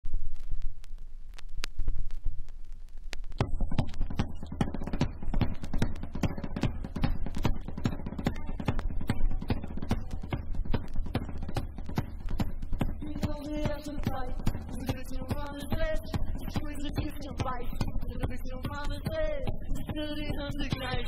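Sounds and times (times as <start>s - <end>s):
driving drums: 3.2s - 21.0s.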